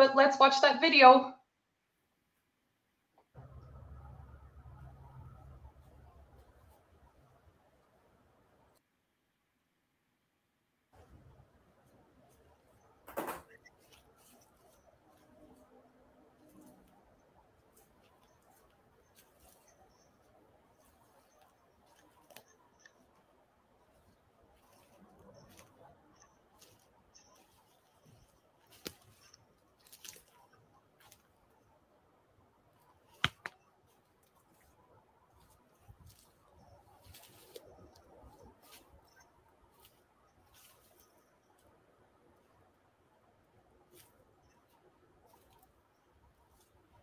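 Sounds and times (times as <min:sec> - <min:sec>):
faint clicks and crackles: 0:03.1 - 0:08.8, 0:10.9 - 0:31.9
footsteps in leaf litter: 0:23.8 - 0:31.3, 0:35.4 - 0:41.2.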